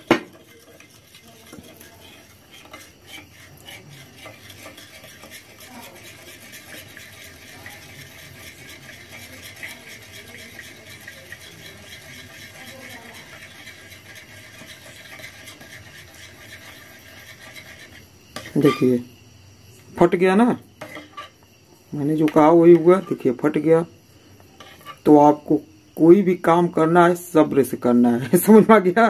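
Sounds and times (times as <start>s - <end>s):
metal spoon scraping glass dish: 0.0s - 19.0s, 20.8s - 21.4s, 24.6s - 25.1s.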